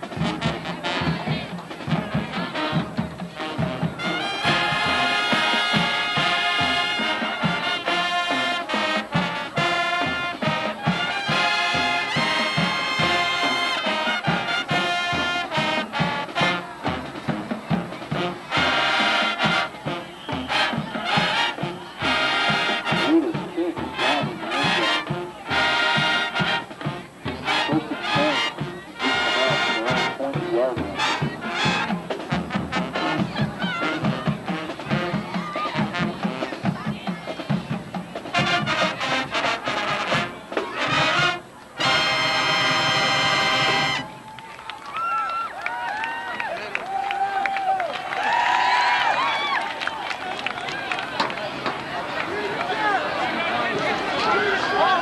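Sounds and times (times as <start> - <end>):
marching band playing brass tune: 0.0 - 44.6, 47.6 - 55.0
crowd voices: 0.0 - 55.0.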